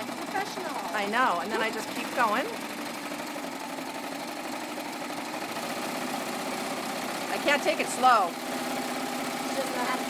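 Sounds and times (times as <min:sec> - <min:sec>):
overlock sewing machine running: 0:00.0 - 0:10.0.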